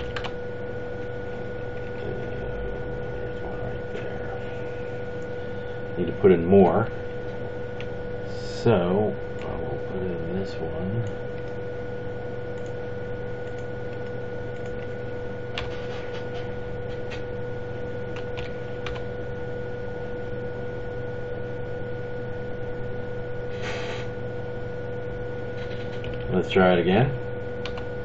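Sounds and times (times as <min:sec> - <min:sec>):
electrical hum: 0:00.0 - 0:28.0
high whine: 0:00.0 - 0:28.0
short hiss: 0:23.6 - 0:24.1.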